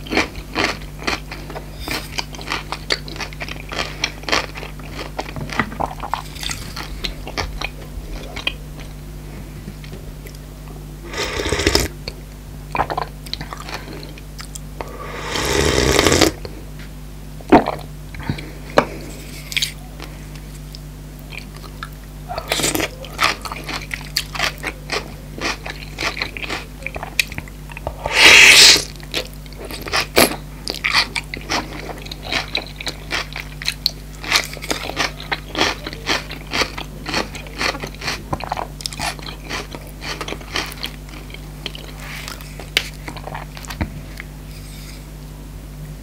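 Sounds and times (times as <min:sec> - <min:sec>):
crunchy chewing: 0:00.0 - 0:09.0, 0:17.7 - 0:45.2.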